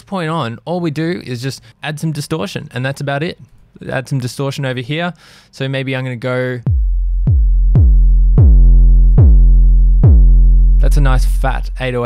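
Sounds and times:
distorted synth bass notes: 0:06.7 - 0:12.0.

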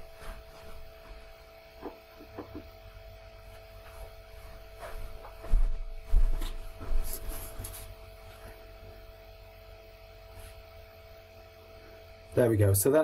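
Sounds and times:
electrical hum: 0:00.0 - 0:13.0
faint steady tones: 0:00.0 - 0:13.0.

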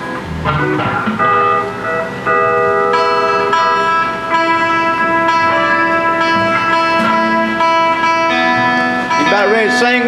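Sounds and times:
country band playing: 0:00.0 - 0:10.0.

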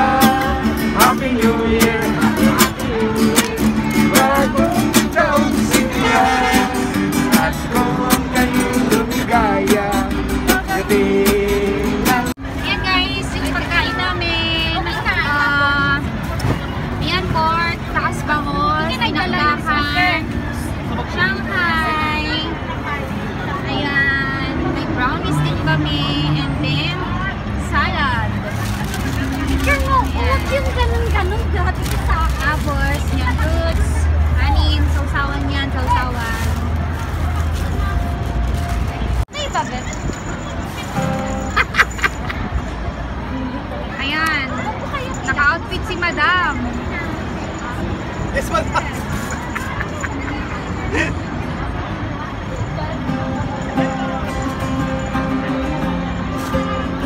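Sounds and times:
people talking and exclaiming: 0:00.0 - 0:57.0
street traffic: 0:00.0 - 0:57.0.

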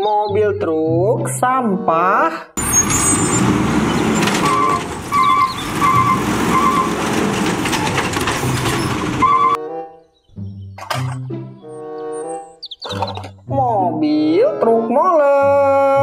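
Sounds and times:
children's music: 0:00.0 - 0:02.5, 0:08.4 - 0:16.0
garbage truck running: 0:02.6 - 0:09.6
hydraulic arm lifting bin: 0:02.6 - 0:09.6.

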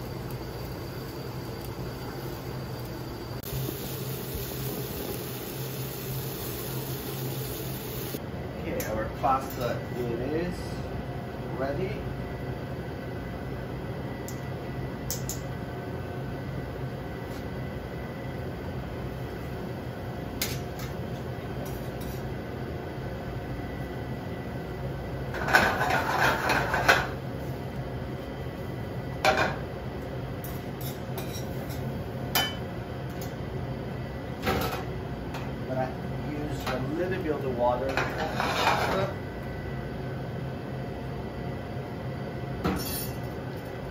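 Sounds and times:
steady low hum: 0:00.0 - 0:43.9
metal utensils clattering in pan: 0:37.9 - 0:39.1.

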